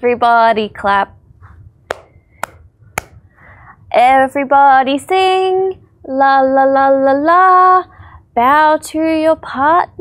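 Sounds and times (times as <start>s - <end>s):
hand claps: 1.9s - 3.2s.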